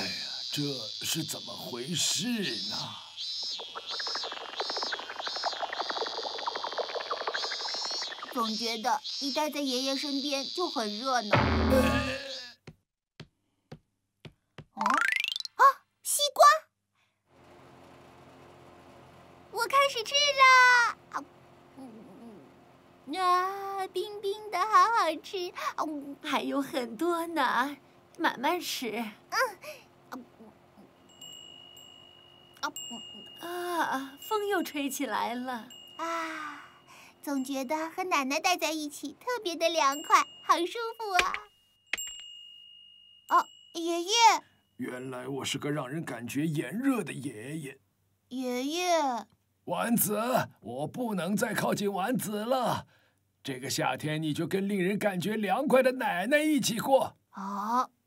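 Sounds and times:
rising electronic pips: 0.0 - 10.7, 11.3 - 12.5, 14.8 - 15.6
cicada chirring in pulses: 0.0 - 12.6
wind chime ringing: 31.0 - 37.7, 39.8 - 44.8.

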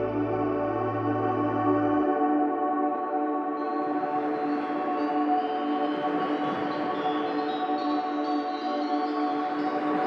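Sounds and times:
ambient synthesizer chord: 0.0 - 3.6.

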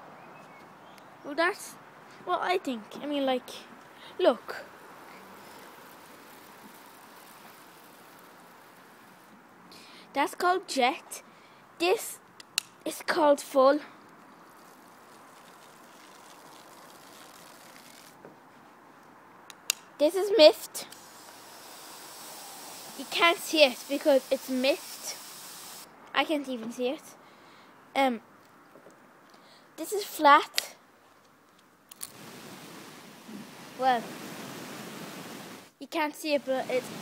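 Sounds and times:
hiss of spraying water: 5.1 - 9.3, 14.6 - 18.2, 20.7 - 25.9, 32.0 - 37.0.

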